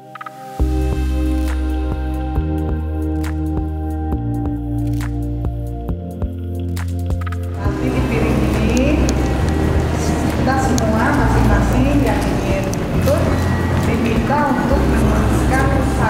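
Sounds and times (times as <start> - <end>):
soft background music: 0.0 - 16.0
crowd murmur: 7.6 - 16.0
woman talking: 7.6 - 16.0.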